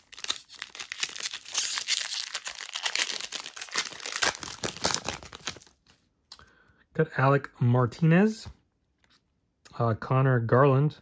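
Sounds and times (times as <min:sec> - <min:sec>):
shiny wrapper tearing and crinkling: 0:00.0 - 0:05.8.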